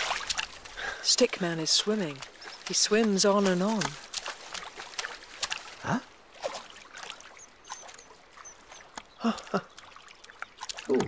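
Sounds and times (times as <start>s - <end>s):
water splashing and trickling: 0.0s - 11.0s.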